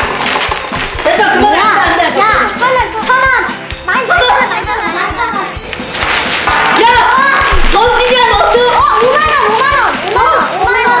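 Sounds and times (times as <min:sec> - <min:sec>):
children shrieking and shouting: 0:08.2 - 0:11.0.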